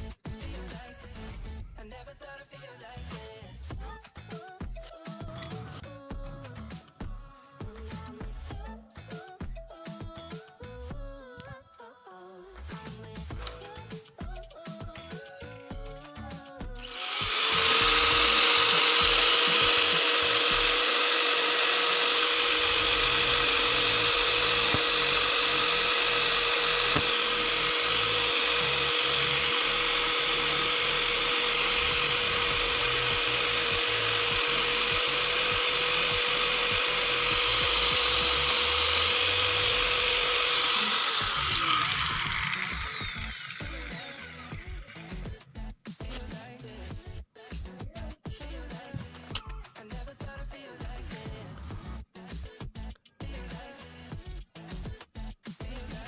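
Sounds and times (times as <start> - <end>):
electric grinder cutting steel: 16.8 - 45.3.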